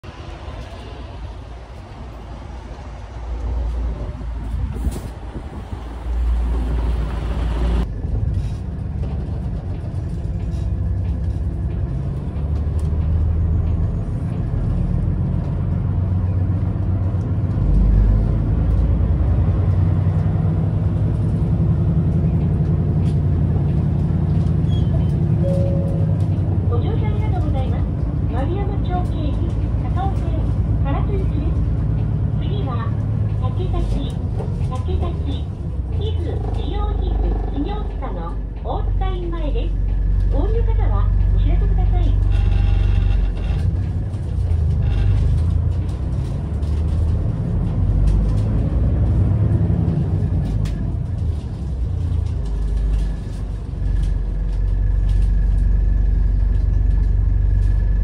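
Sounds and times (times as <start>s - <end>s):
bus diesel engine running: 0.0s - 58.0s.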